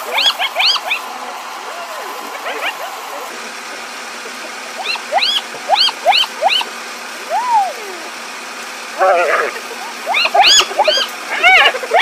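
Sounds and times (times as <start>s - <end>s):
hyenas calling: 0.0s - 1.0s, 2.1s - 8.2s, 8.8s - 12.0s
steady hiss: 0.0s - 12.0s.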